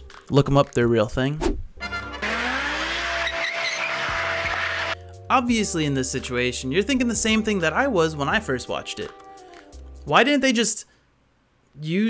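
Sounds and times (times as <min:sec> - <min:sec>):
car engine running: 0:01.9 - 0:05.0
tyre squeal: 0:02.2 - 0:05.0.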